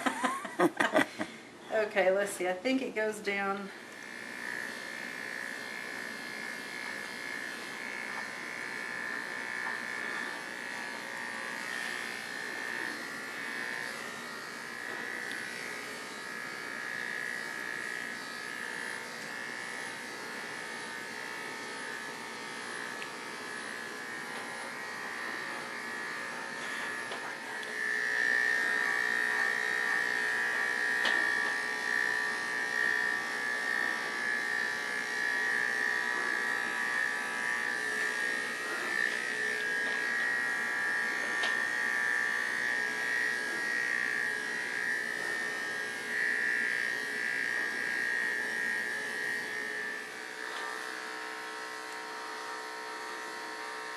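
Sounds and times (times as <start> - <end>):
electric dog clippers buzzing: 0.0 - 53.9.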